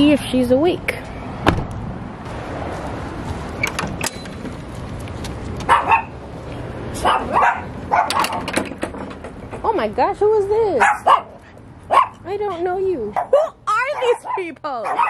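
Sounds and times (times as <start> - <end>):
small dogs barking: 5.6 - 6.2, 7.0 - 8.4, 10.8 - 12.2, 13.1 - 15.0.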